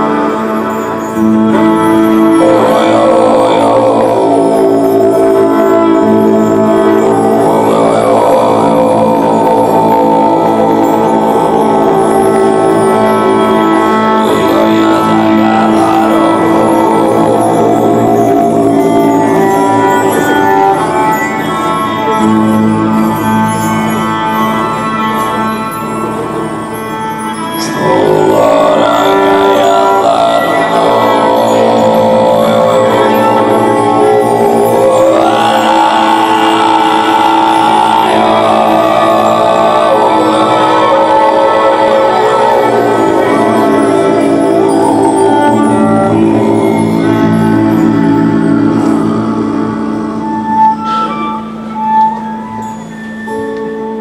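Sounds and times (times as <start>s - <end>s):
band playing droning chords: 0.0s - 54.0s.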